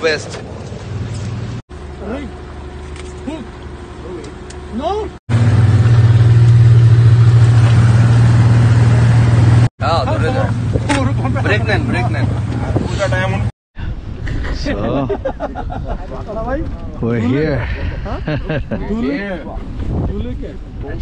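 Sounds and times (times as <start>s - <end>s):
outboard motors droning: 0.0s - 13.5s
voices talking: 9.8s - 13.5s.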